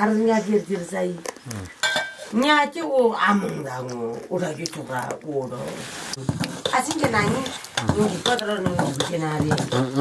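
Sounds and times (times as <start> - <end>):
person speaking: 1.4 - 1.8
metal spoon stirring in pot: 1.8 - 2.6, 4.4 - 10.0
water sizzling in hot pot: 5.4 - 10.0.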